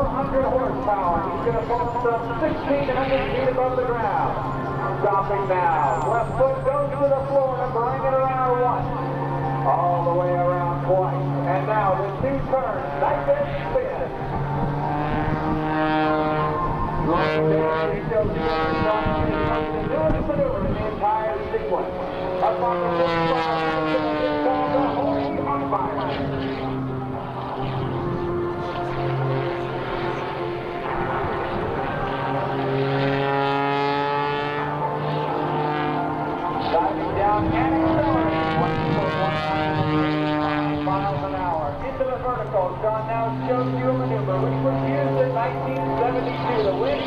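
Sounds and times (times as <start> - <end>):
propeller plane engine: 0.0 - 47.0.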